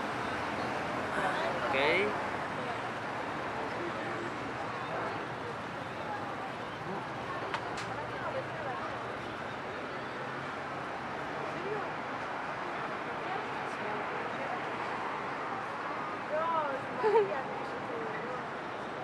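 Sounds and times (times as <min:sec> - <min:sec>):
murmur of distant voices: 0:00.0 - 0:19.0.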